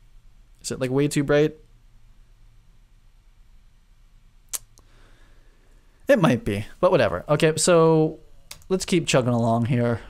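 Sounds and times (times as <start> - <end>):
low steady hum: 0.0 - 10.0
sharp click: 4.5 - 4.9.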